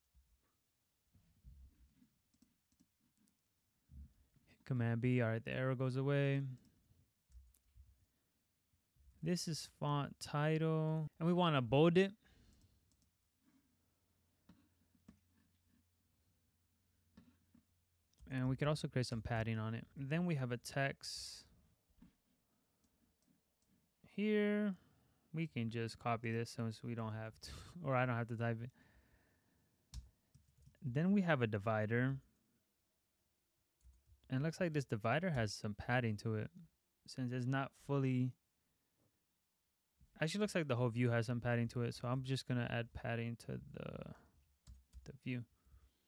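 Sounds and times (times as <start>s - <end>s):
man speaking: 4.6s - 6.6s, 9.2s - 12.2s, 18.3s - 21.4s, 24.1s - 24.8s, 25.4s - 28.7s, 30.8s - 32.2s, 34.3s - 38.4s, 40.2s - 44.2s, 45.1s - 45.4s.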